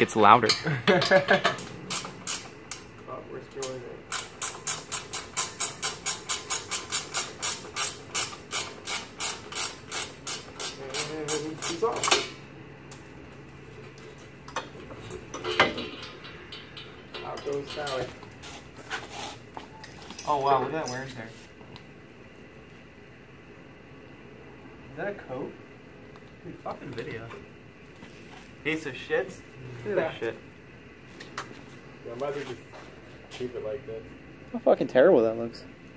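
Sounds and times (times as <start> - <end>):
metal knocks: 14.5 - 18.3.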